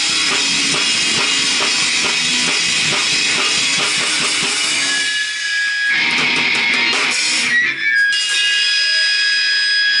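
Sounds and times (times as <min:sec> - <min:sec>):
guitar amplifier feedback: 0:00.0 - 0:10.0.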